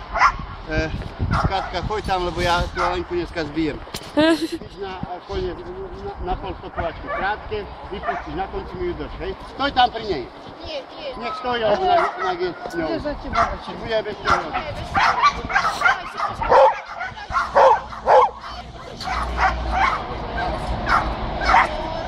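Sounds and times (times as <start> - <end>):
dog barking sharply: 11.9 - 12.4, 13.3 - 13.6, 14.3 - 20.1, 20.8 - 21.8.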